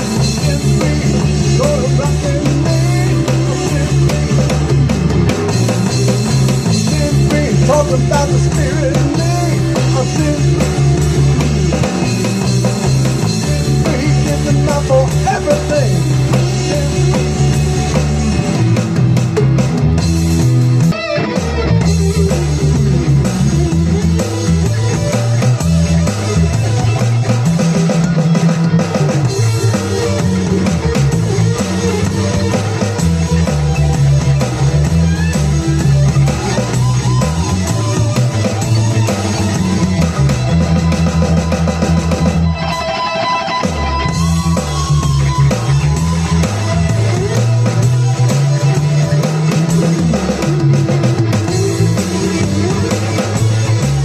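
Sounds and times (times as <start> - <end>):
drums: 0.0 - 54.0
electric bass: 0.0 - 54.0
rock band playing: 0.0 - 54.0.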